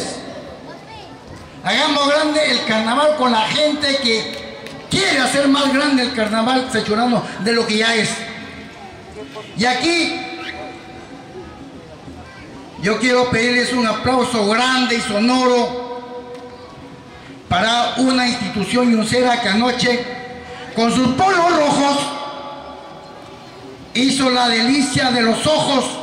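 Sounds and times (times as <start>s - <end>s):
man's amplified speech: 0.0s - 0.6s, 1.6s - 11.0s, 12.8s - 16.3s, 17.4s - 22.9s, 23.9s - 26.0s
low background noise: 0.0s - 26.0s.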